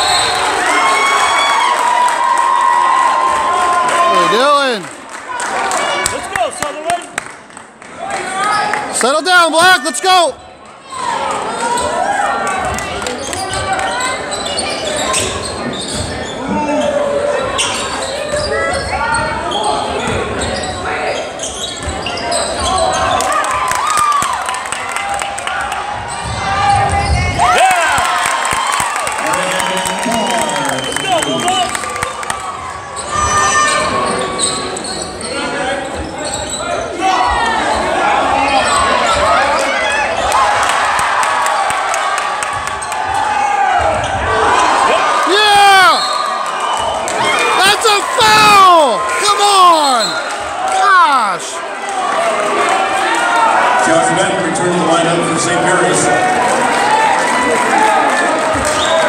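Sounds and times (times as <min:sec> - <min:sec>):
crowd chatter: 0:03.2 - 0:59.0
people shouting: 0:43.2 - 0:46.0, 0:47.2 - 0:51.6.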